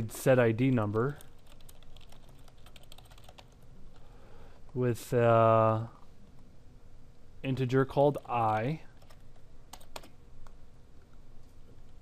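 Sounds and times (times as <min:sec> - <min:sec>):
computer keyboard typing: 0:01.1 - 0:03.6, 0:08.2 - 0:10.2.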